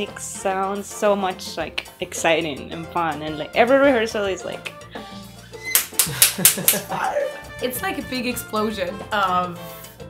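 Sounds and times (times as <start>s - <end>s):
background music: 0.0s - 10.0s
woman laughing: 5.9s - 7.4s.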